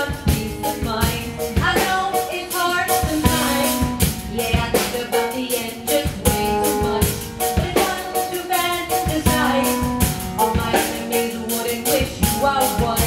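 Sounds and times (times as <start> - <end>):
bass guitar: 0.0 - 2.0, 3.0 - 5.0, 9.0 - 11.0
drum kit beat: 0.0 - 13.0
live band playing: 0.0 - 13.0.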